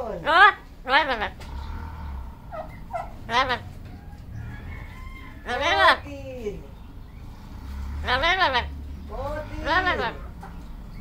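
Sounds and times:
parrot call: 0:00.2 - 0:06.1, 0:08.0 - 0:08.8.

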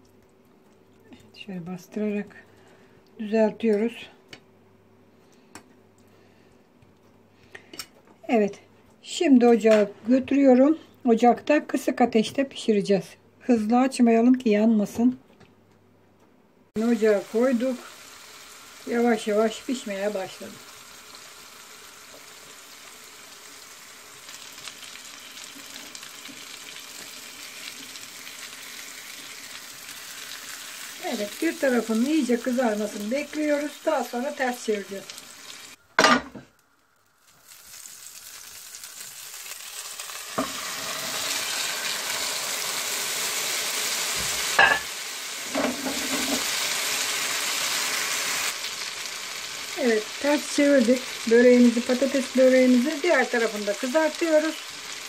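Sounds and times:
batter sizzling in a pan: 0:16.8 - 0:35.8, 0:36.6 - 0:55.0.

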